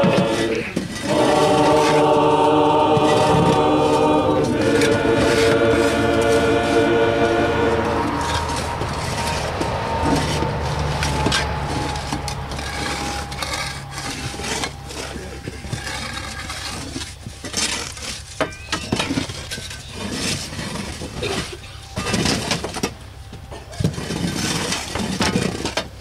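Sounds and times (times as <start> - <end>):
shovels scraping soil: 0.0 - 25.9.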